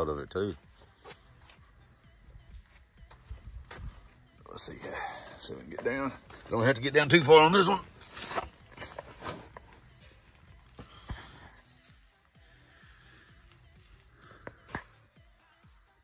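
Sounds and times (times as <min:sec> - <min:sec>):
faint background music: 0:00.0 - 0:16.0
faint scuffs on pavement: 0:00.8 - 0:01.8, 0:02.5 - 0:04.2, 0:07.6 - 0:09.9.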